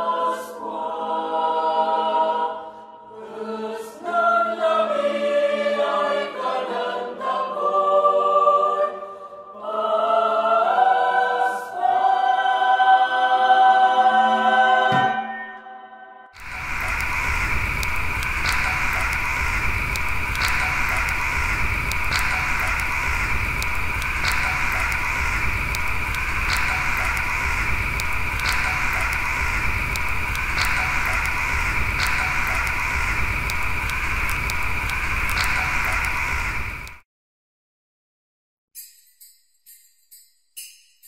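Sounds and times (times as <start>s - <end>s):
low rumble: 16.4s - 37.0s
open fire crackling: 16.4s - 37.0s.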